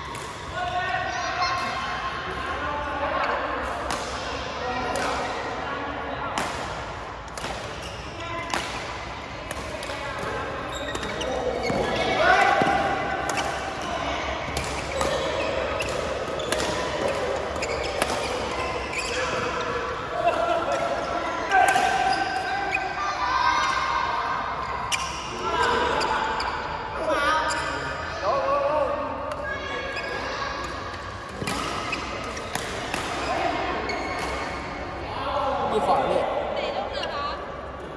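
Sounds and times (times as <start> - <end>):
rackets hitting shuttlecock: 3.6 - 5.4, 6.3 - 22.5, 30.6 - 34.7.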